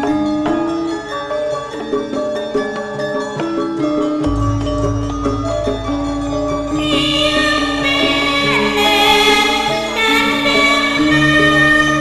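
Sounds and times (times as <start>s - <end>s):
gamelan music: 0.0s - 12.0s.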